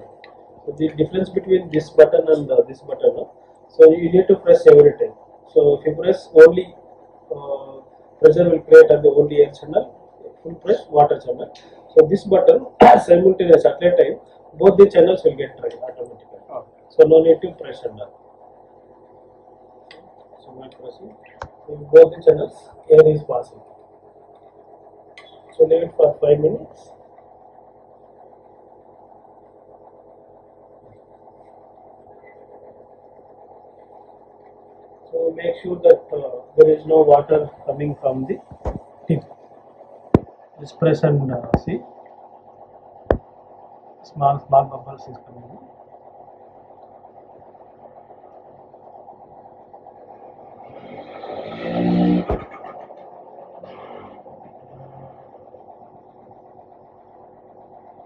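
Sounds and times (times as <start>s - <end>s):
air pump humming: 0.0s - 58.0s.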